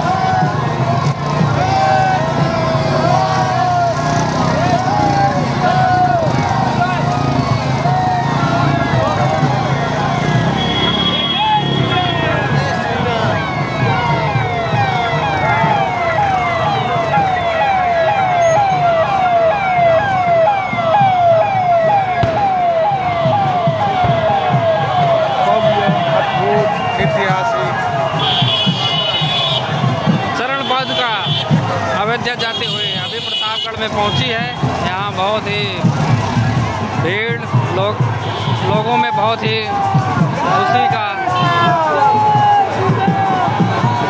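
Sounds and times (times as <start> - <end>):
police siren wailing and yelping: 0.0 - 32.3
crowd noise: 0.0 - 44.0.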